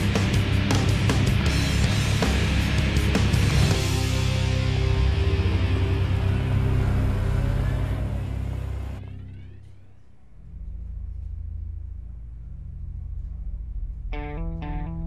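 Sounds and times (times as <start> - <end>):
loud driving music: 0.0 - 9.5
low sustained drone: 0.0 - 15.0.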